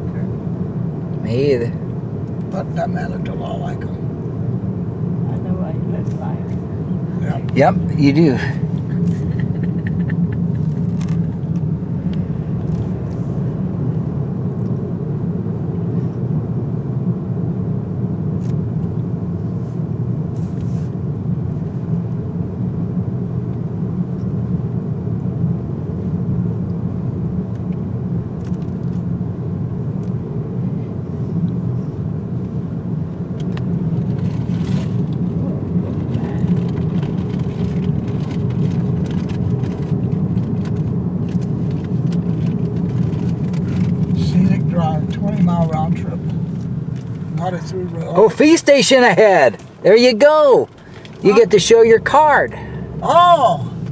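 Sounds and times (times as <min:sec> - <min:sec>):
car road and engine noise: 0:00.0 - 0:53.9.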